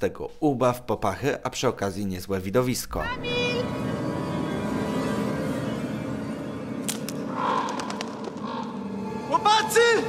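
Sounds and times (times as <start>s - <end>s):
dark droning score: 3.6s - 10.0s.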